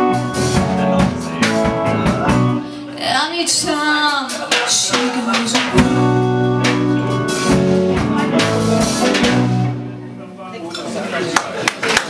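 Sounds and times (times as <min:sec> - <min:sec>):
band chord: 0:00.0 - 0:02.9, 0:04.5 - 0:10.6
bar-room chatter: 0:00.0 - 0:12.0.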